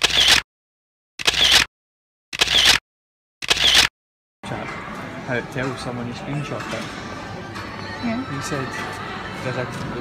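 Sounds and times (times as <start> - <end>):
camera shutter clicks: 0.0 - 0.4, 1.2 - 1.7, 2.4 - 2.8, 3.4 - 3.9
busy room noise: 4.4 - 10.0.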